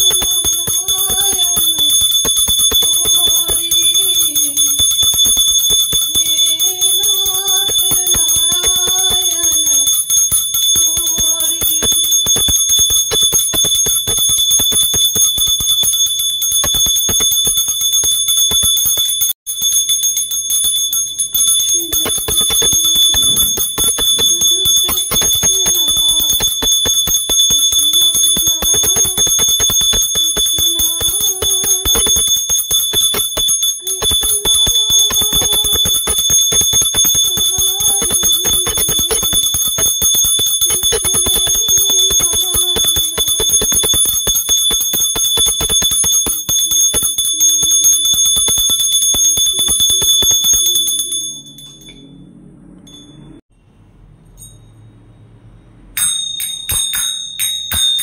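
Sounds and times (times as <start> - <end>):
person singing a melody: 0.0 - 4.9, 6.1 - 11.9, 21.8 - 32.4, 33.0 - 39.7, 40.4 - 43.9
hand bell ringing rapidly: 0.0 - 52.1, 56.0 - 58.0.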